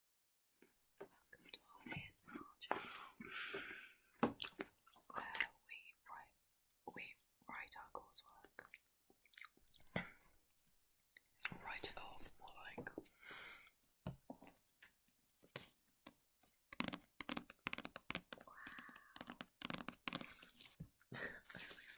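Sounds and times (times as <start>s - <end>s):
people talking softly and whispering: 1.0s - 3.2s, 4.9s - 8.8s, 11.4s - 13.1s.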